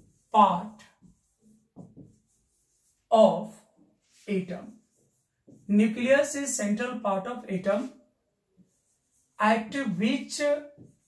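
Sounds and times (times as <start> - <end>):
chalk scratching on chalkboard: 0.0 - 6.4, 8.6 - 11.0.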